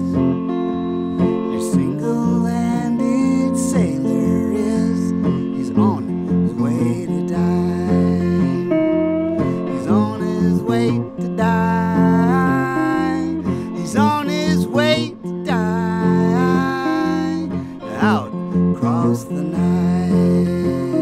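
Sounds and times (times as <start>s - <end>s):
electric guitar playing: 0.0s - 21.0s.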